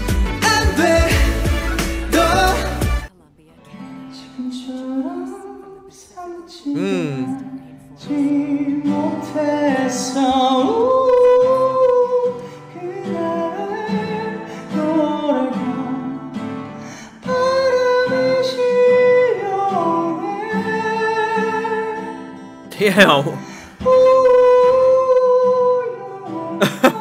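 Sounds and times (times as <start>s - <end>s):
acoustic guitar: 0.0s - 27.0s
man singing slow song: 0.4s - 2.8s, 4.4s - 16.2s, 22.7s - 27.0s.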